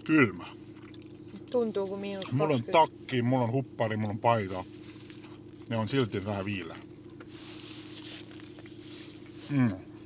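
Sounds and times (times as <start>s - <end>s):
steady low hum: 0.0s - 10.0s
quiet chewing: 0.4s - 2.4s, 6.6s - 10.0s.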